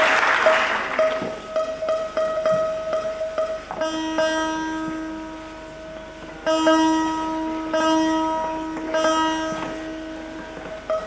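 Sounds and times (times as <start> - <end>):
long-necked lute plucking: 0.0 - 11.0.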